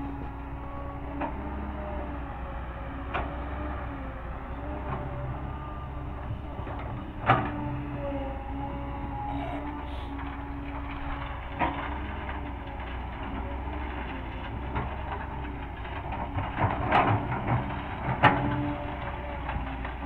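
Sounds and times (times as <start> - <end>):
excavator diesel engine running: 0.0 - 20.0.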